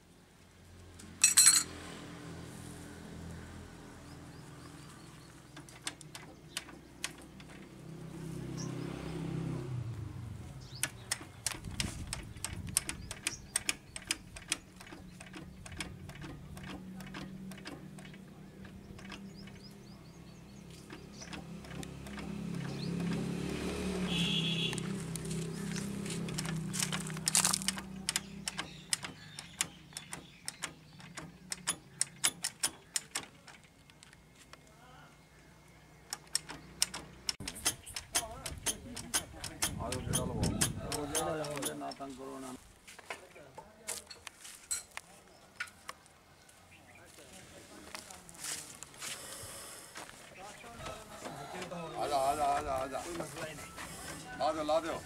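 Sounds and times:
metallic clicks of engine controls: 5.5 - 7.8, 10.6 - 20.0, 20.7 - 23.3, 26.3 - 34.6, 36.0 - 42.2.

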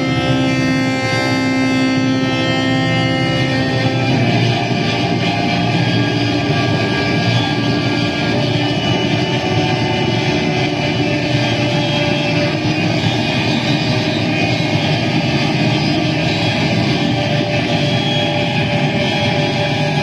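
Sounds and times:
distorted saxophone drone: 0.0 - 20.0.

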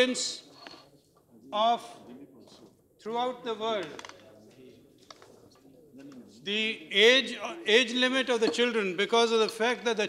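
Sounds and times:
low murmur of voice: 3.9 - 6.5.

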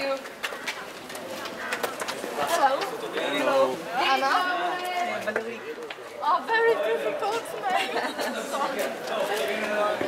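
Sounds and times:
sharp clicks or footsteps: 0.0 - 3.4, 4.8 - 6.1
people chattering: 0.0 - 10.0.

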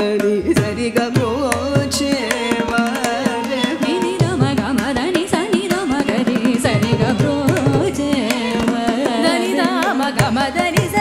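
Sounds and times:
violin: 0.0 - 11.0
women singing ornamented melody: 2.5 - 11.0.

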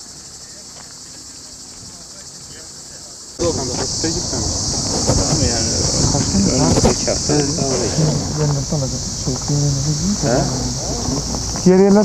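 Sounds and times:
high-pitched insect drone: 0.0 - 12.0
people talking indistinctly: 1.2 - 12.0.

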